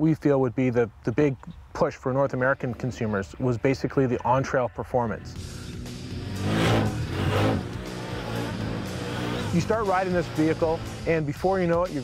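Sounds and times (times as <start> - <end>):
background music: 2.2 - 12.0
atv engine revving: 5.3 - 12.0.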